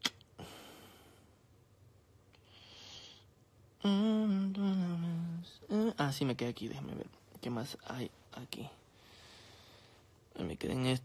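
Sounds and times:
man humming low notes: 3.8s - 5.9s
short vocal sound: 3.8s - 6.0s.

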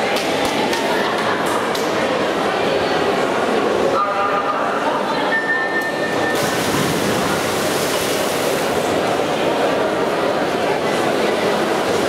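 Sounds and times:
indoor crowd noise: 0.0s - 12.0s
water splashing: 6.3s - 9.4s.

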